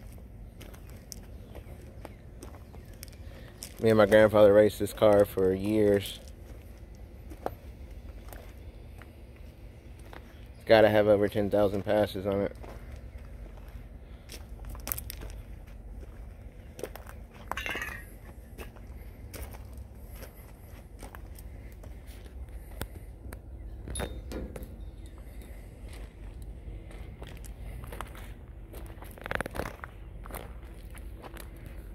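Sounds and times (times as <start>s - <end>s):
footsteps on gravel: 0.0s - 23.6s, 24.6s - 31.9s.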